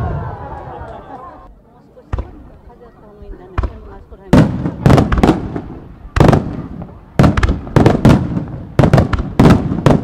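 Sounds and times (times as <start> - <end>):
crowd murmuring: 0.0 - 8.9.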